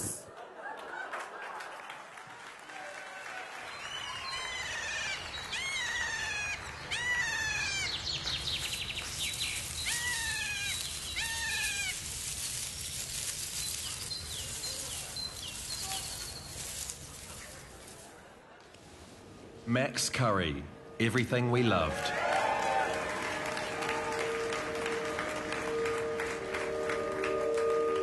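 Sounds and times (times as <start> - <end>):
animal cries rising and falling: 4.3 - 8.0, 9.8 - 12.1.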